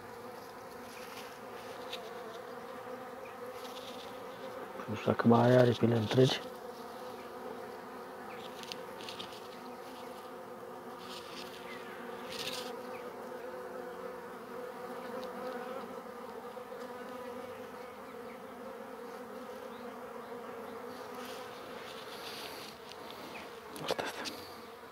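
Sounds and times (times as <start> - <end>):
honeybees buzzing: 0.0 - 24.9.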